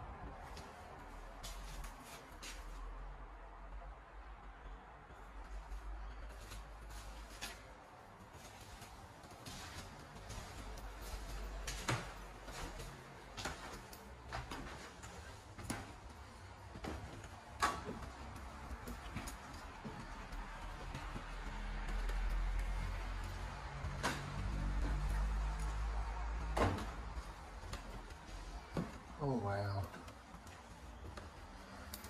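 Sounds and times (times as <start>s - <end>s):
footsteps on wooden stairs: 6.5s - 29.2s.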